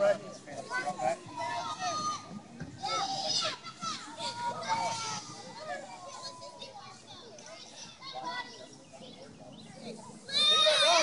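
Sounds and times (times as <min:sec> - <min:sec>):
children chattering and calling out: 0:00.0 - 0:11.0.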